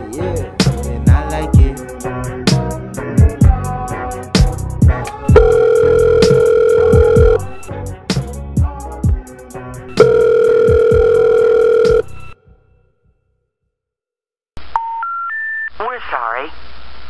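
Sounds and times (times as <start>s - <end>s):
hip hop beat: 0.0s - 12.1s
rising telephone intercept tones: 5.3s - 7.6s, 9.9s - 12.4s
recorded operator voice: 15.8s - 16.7s.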